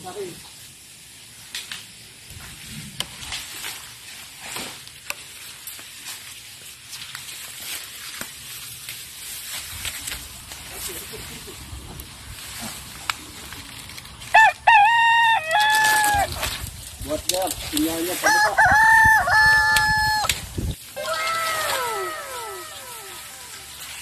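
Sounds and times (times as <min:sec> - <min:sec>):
rooster crowing: 0:14.3 - 0:16.3, 0:18.2 - 0:20.4, 0:21.0 - 0:23.8.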